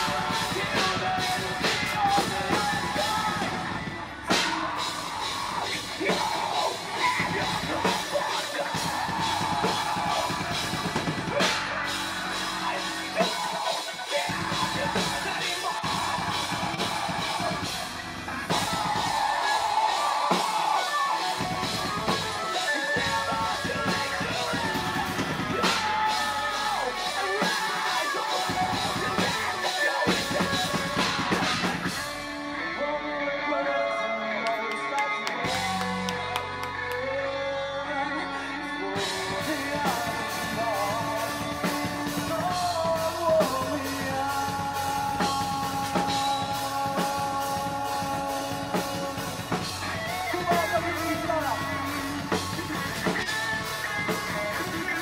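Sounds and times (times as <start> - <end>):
heavy drums: 0.0 - 32.6, 34.5 - 37.2, 38.8 - 55.0
distorted guitars: 0.0 - 55.0
heavy metal band playing: 0.0 - 55.0.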